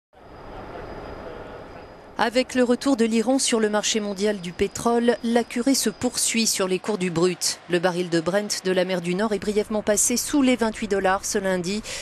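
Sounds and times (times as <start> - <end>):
machinery drone: 0.2 - 7.0
faint high whine: 0.2 - 12.0.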